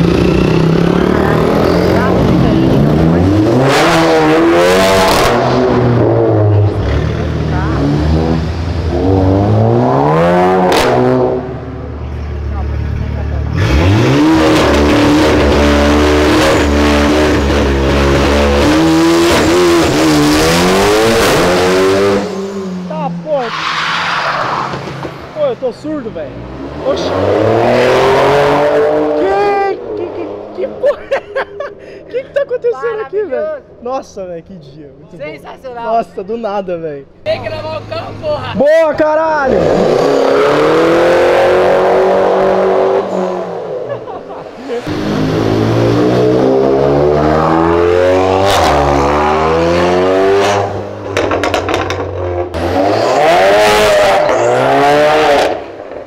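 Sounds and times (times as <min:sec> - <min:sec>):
cars accelerating hard: 0:00.0 - 0:32.5, 0:37.9 - 0:56.0.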